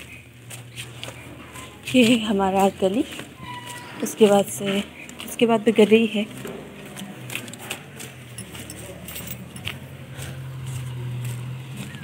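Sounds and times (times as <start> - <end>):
low engine hum: 0.0 - 12.0
light metallic jingling: 8.2 - 10.2.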